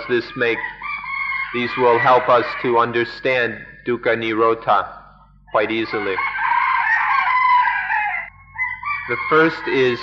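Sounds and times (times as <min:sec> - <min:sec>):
rooster crowing: 0:00.0 - 0:03.4, 0:05.6 - 0:10.0.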